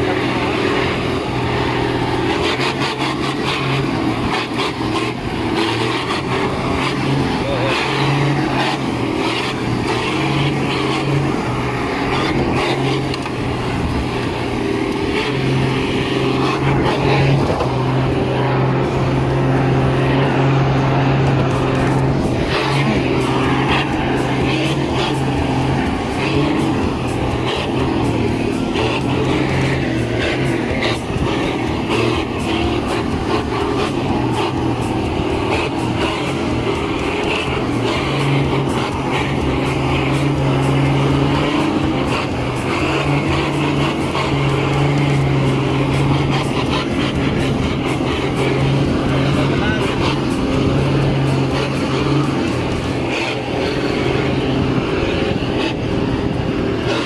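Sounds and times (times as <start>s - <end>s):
pickup engine pulling under load: 0.0s - 57.0s
vehicle rumbling on dirt track: 0.0s - 57.0s.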